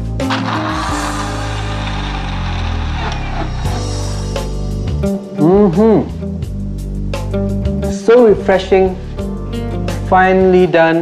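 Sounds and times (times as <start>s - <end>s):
background music: 0.0s - 11.0s
mixer grinder crushing ice: 0.2s - 4.2s.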